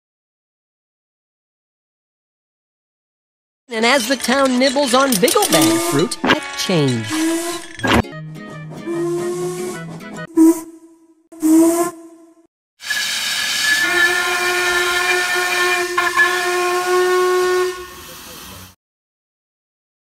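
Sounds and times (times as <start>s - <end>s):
toy train chugging: 3.7s - 7.8s
toy train whistle toots: 5.3s - 8.0s, 8.8s - 12.2s, 12.8s - 18.7s
locomotive steam whistle blast: 5.4s - 8.0s, 8.8s - 18.8s
steam hissing: 7.1s - 7.8s, 12.8s - 18.8s.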